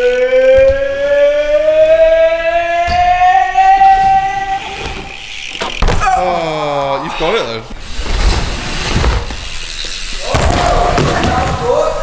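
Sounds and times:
bike tyres thumping on wooden ramps: 0.4s - 6.8s, 7.7s - 12.0s
person shouting: 3.2s - 4.8s.

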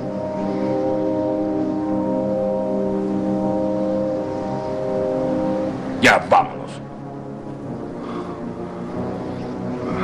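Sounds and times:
sustained synthesizer chord: 0.0s - 10.0s.

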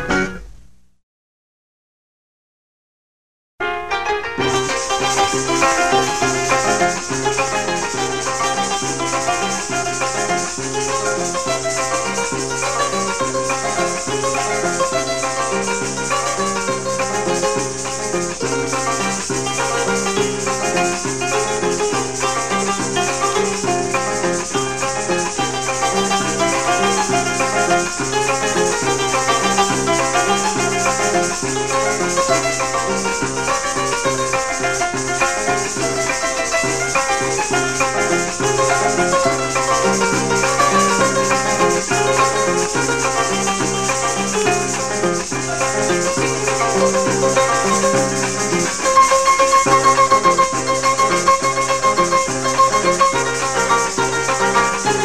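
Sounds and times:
harp melody: 3.8s - 55.0s
maracas shaking: 4.4s - 55.0s.

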